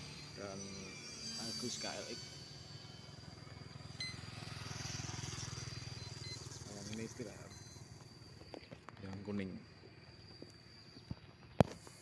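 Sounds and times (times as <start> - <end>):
motorcycle riding past: 1.2 - 8.5.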